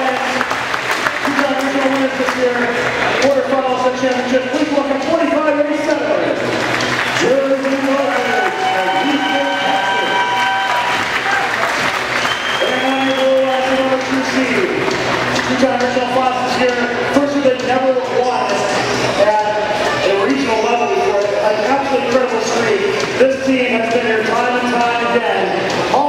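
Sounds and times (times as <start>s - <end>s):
crowd cheering and applauding: 0.0s - 4.0s, 6.2s - 16.4s
announcer over public address: 7.2s - 10.4s, 12.6s - 14.8s.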